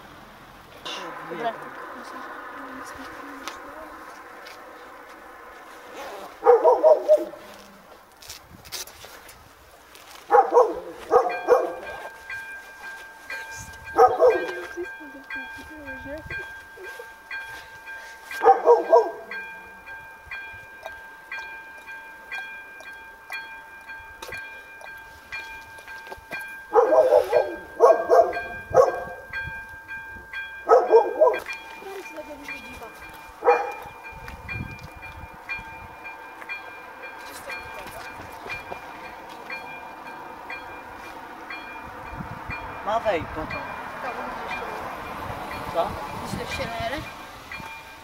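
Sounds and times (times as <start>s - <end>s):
level crossing warning bell: 0.8s - 7.6s, 9.9s - 48.0s
dog barking: 6.3s - 7.4s, 10.3s - 12.1s, 14.0s - 14.7s, 18.4s - 19.4s, 26.7s - 29.3s, 30.6s - 31.5s, 33.4s - 33.9s.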